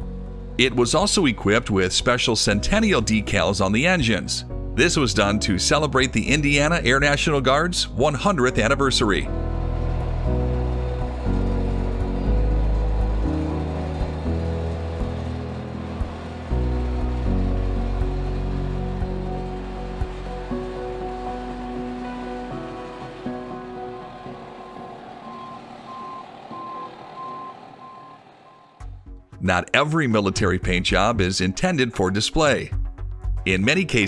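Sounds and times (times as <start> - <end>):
background music: 0.0 - 34.0
vehicle backup alarm beeping: 23.6 - 28.9.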